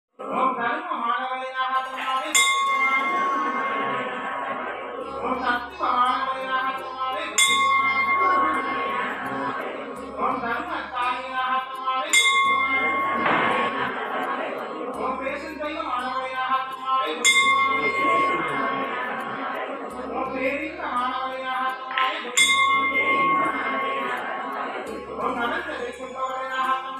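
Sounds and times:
temple bell ringing: 0:01.8 - 0:04.5, 0:05.6 - 0:10.1, 0:11.8 - 0:14.1, 0:17.2 - 0:19.3, 0:22.3 - 0:24.4.

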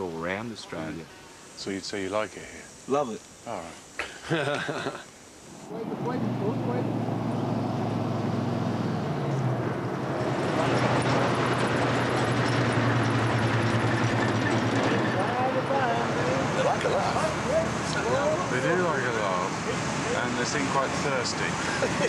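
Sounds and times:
voices: 0:00.0 - 0:07.0, 0:14.5 - 0:22.0
tyre and road noise: 0:05.6 - 0:22.0
truck engine running: 0:05.7 - 0:22.0.

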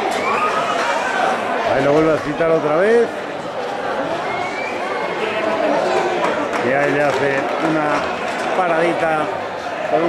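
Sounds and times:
crowd noise: 0:00.0 - 0:10.0
men talking: 0:01.6 - 0:03.2, 0:05.1 - 0:10.0.

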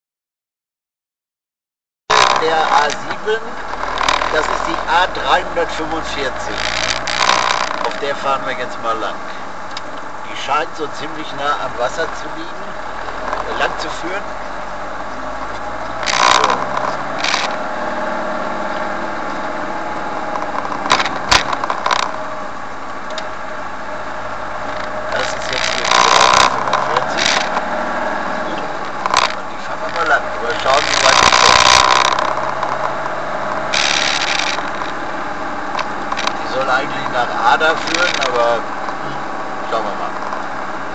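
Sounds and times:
rushes of noise: 0:02.1 - 0:40.9
vehicle engine and road drone: 0:02.1 - 0:40.9.

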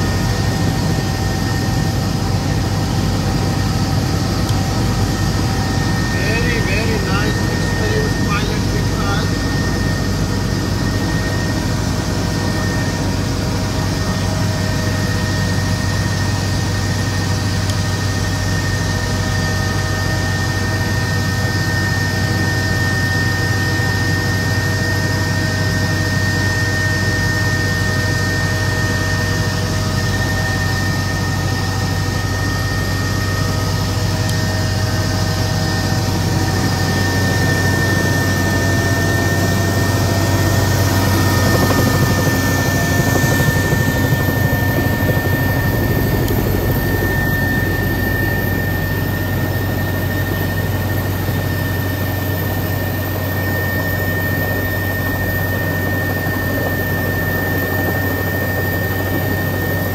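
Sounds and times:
engine whine: 0:00.0 - 0:59.9
helicopter rotor drone: 0:00.0 - 0:59.9.

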